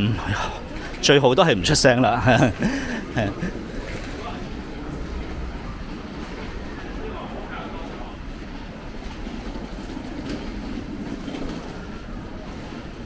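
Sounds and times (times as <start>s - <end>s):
faint voices of passers-by: 0.0s - 13.0s
low city rumble: 0.0s - 13.0s.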